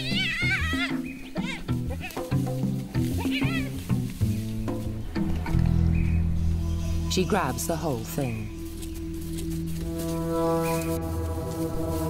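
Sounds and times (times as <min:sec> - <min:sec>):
hyenas wavering calls: 0:00.0 - 0:02.2
low documentary music: 0:00.0 - 0:12.0.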